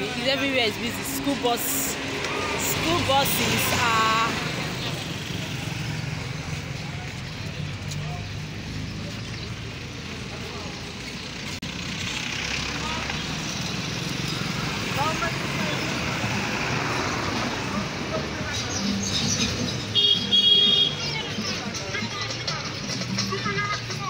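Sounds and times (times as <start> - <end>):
engines running and passing: 0.0 - 24.0
steady road noise: 0.0 - 24.0.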